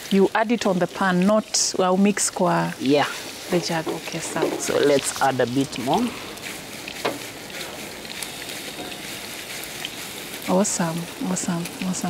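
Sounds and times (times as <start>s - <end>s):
batter sizzling in frying pan: 0.0s - 12.0s.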